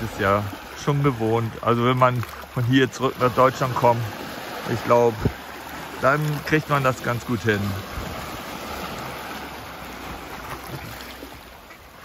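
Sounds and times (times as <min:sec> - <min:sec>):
waves splashing over rocks: 0:00.0 - 0:12.0.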